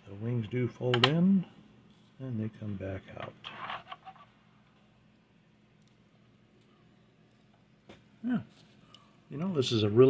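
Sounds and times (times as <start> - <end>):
rustling and scraping handling noise: 1.8 - 4.9, 7.9 - 8.9.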